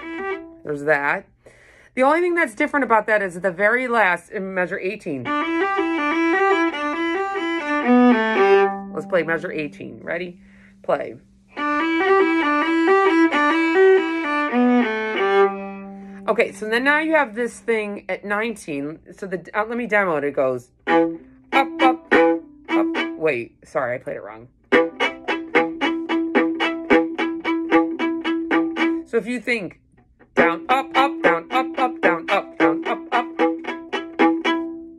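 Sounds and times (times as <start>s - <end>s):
viola bowed notes: 0.0s - 1.2s, 3.8s - 18.0s, 19.6s - 29.6s, 30.2s - 34.9s.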